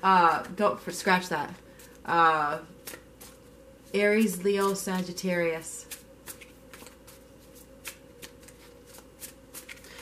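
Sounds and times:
cards being shuffled: 0:05.9 - 0:10.0.

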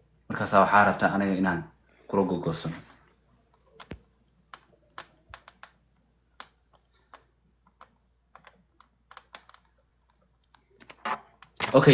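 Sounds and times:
faint keyboard typing: 0:03.0 - 0:11.9.

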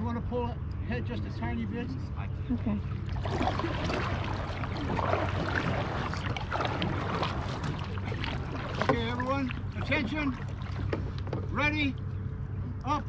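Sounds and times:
wind rumbling on microphone: 0:02.4 - 0:12.8
water lapping: 0:02.5 - 0:12.1
paddles splashing: 0:02.8 - 0:12.0.

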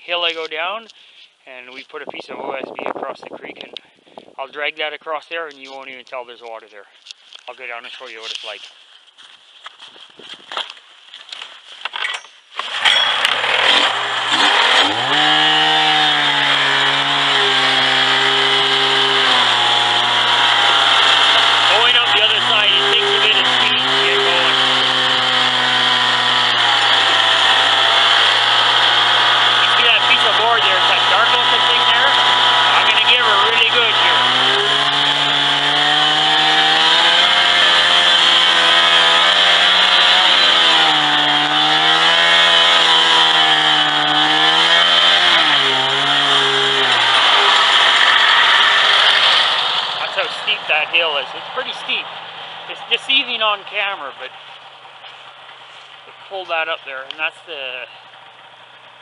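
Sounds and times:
snowmobile engine running: 0:13.1 - 0:52.0.

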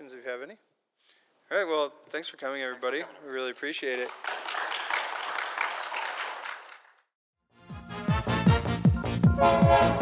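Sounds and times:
audience applauding: 0:04.0 - 0:07.1.

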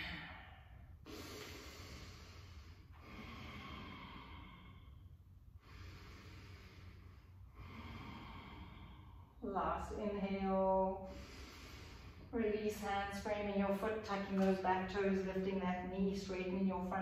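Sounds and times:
slow human breathing: 0:00.0 - 0:09.7, 0:10.6 - 0:12.4.

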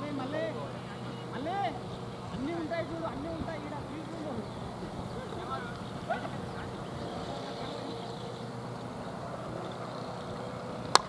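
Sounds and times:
open-air background noise: 0:00.0 - 0:11.0.

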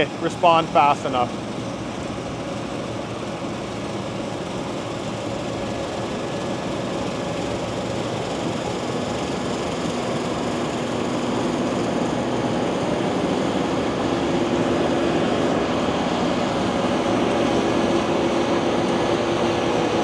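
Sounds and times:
combine harvester drone: 0:00.0 - 0:20.0.

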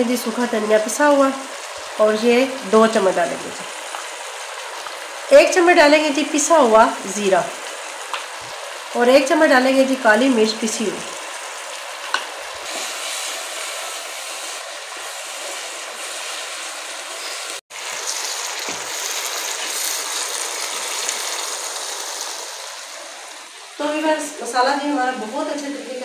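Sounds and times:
sauce sizzling in oil: 0:00.0 - 0:25.6.

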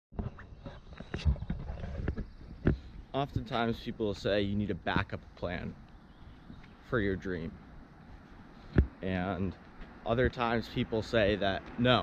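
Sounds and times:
sneaker footsteps on asphalt: 0:04.9 - 0:10.1.

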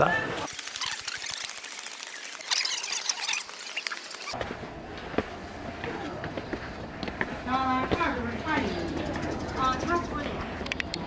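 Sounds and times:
outdoor ambience: 0:00.0 - 0:11.0
high-pitched squeaks and chirps: 0:00.5 - 0:04.4.

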